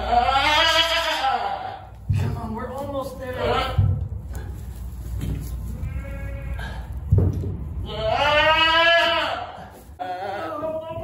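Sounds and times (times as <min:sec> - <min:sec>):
goat bleating: 0:00.0 - 0:02.0, 0:03.3 - 0:03.8, 0:05.7 - 0:06.9, 0:07.8 - 0:11.0
dull thump: 0:07.1 - 0:07.8.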